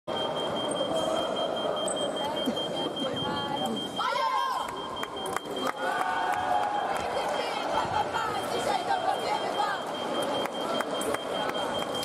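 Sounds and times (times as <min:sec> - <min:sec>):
sports hall background noise: 0:00.1 - 0:12.0.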